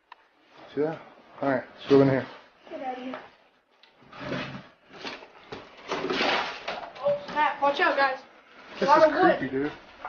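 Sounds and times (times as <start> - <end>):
wooden scraping: 3.8 - 10.0.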